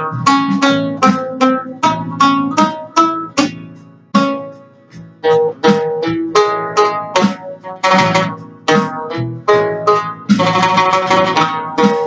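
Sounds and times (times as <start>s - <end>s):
oud plucked melody: 0.0s - 12.0s.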